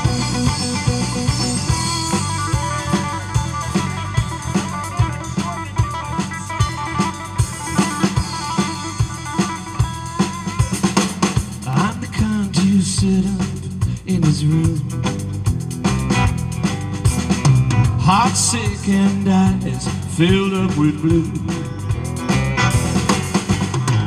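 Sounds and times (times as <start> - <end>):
bass guitar: 0.0 - 24.0
drum kit steady beat: 0.0 - 24.0
electric guitar lead with bends: 0.0 - 24.0
person singing: 11.6 - 15.1, 18.0 - 22.0.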